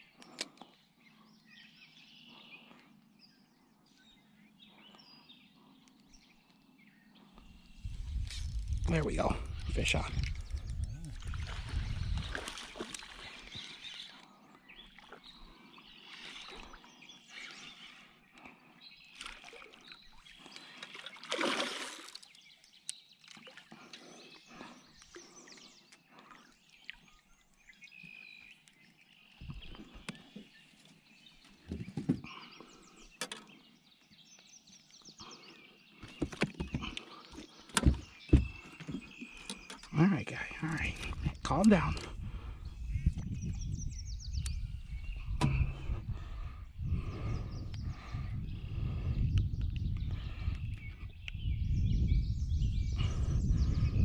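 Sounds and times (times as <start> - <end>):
water splashes: 11.1 - 13.9, 19.1 - 22.4
knocks and thumps on deck: 31.7 - 32.3.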